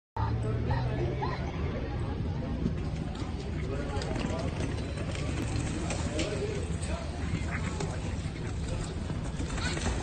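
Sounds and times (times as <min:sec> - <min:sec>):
crowd voices and chatter: 0:00.2 - 0:10.0
horse hoofbeats galloping on dirt: 0:02.9 - 0:10.0.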